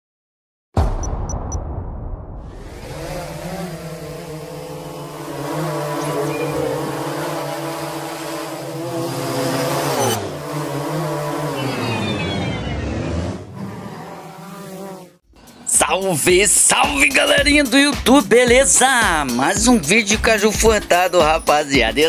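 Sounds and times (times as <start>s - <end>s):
drone propellers humming: 2.5s - 14.3s.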